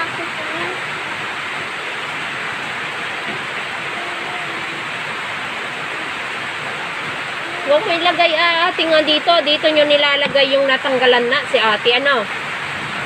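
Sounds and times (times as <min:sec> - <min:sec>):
heavy rain pouring: 0:00.0 - 0:13.0.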